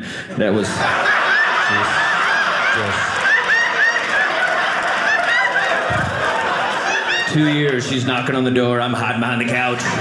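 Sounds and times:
audience laughter: 0:00.4 - 0:08.1.

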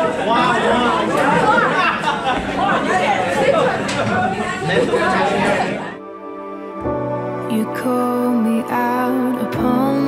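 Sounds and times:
crowd chatter: 0:00.0 - 0:07.8.

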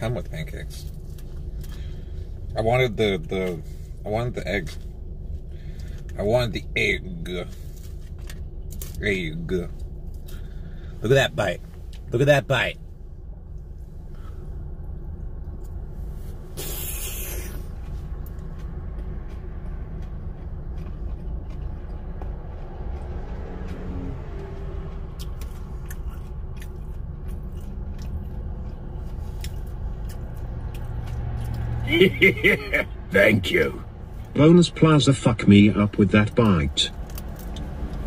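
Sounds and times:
man chewing food: 0:13.4 - 0:31.8
brief hiss: 0:16.5 - 0:17.6.

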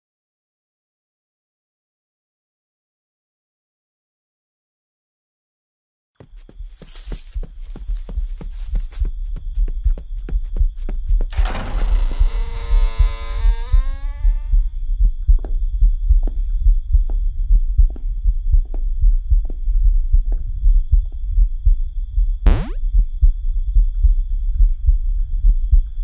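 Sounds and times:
throbbing bass pulse: 0:12.7 - 0:26.0
high electronic hum: 0:22.5 - 0:22.8.

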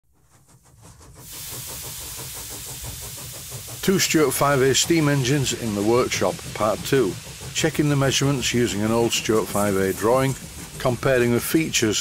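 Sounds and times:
model steam engine running: 0:00.2 - 0:12.0.

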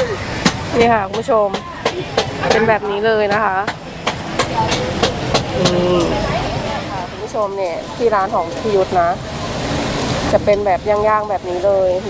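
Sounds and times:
market noise: 0:00.0 - 0:12.0
voices: 0:00.0 - 0:12.0.

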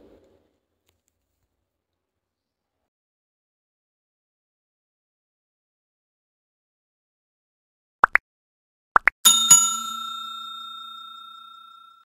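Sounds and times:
bell chime ding: 0:09.3 - 0:12.0.

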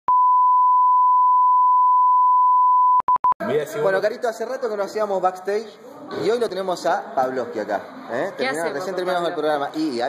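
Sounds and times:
steady test tone beep: 0:00.1 - 0:03.4.

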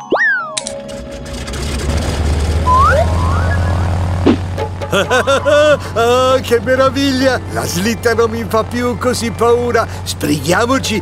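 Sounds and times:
cartoon boing: 0:00.0 - 0:00.6, 0:02.7 - 0:04.4
background music: 0:00.0 - 0:11.0
low hum: 0:00.6 - 0:10.1
rising whistles: 0:02.6 - 0:04.0, 0:06.6 - 0:11.0.

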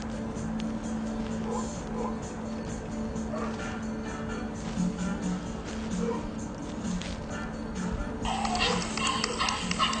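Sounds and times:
background music: 0:00.0 - 0:10.0
dog barking and yipping: 0:01.4 - 0:02.2, 0:03.3 - 0:03.8, 0:06.0 - 0:06.3, 0:08.6 - 0:10.0.

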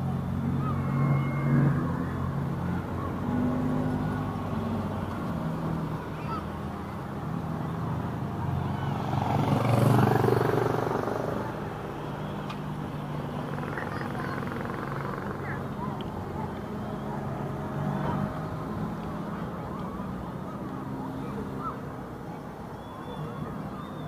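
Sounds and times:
low traffic hum: 0:00.0 - 0:24.0
people's voices: 0:00.0 - 0:24.0
car driving past: 0:07.3 - 0:21.8.

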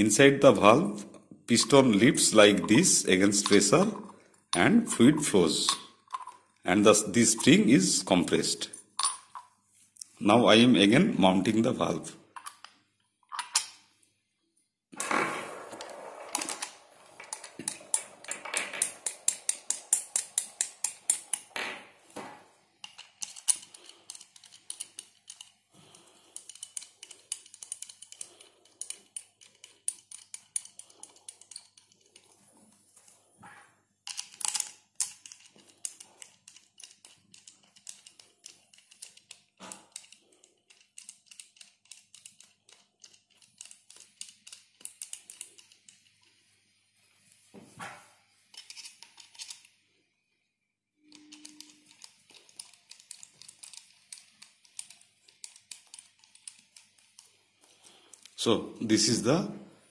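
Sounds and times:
small metal parts clicking: 0:16.3 - 0:21.5, 0:22.8 - 0:33.1, 0:34.0 - 0:46.4, 0:48.4 - 0:49.9, 0:51.0 - 0:58.4.

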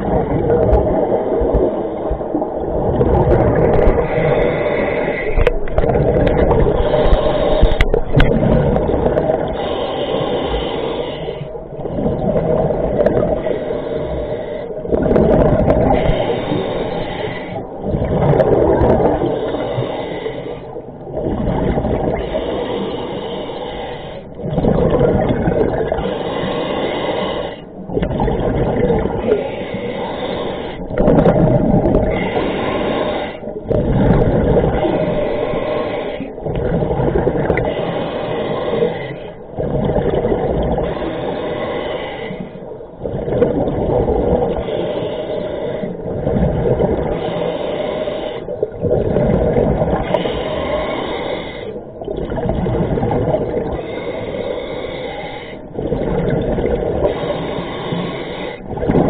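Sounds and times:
gurgling exhaled bubbles: 0:00.0 - 0:23.8, 0:24.4 - 0:59.0
diver breathing through regulator: 0:00.0 - 0:59.0.

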